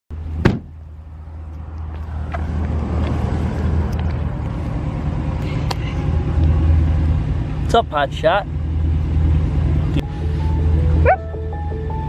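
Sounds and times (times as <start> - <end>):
vehicle engine running: 0.1 - 12.0.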